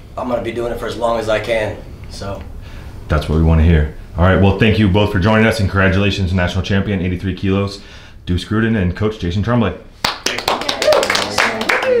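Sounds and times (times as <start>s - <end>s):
group clapping: 10.0s - 12.0s.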